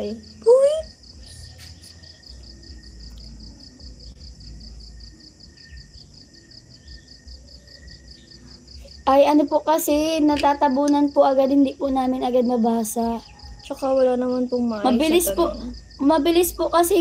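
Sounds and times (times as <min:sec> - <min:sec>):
cricket chirping: 0:00.0 - 0:17.0.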